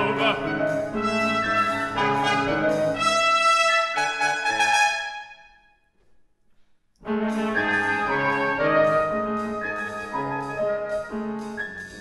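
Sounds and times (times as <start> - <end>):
chamber orchestra chords with brass: 0.0 - 5.4, 7.1 - 12.0.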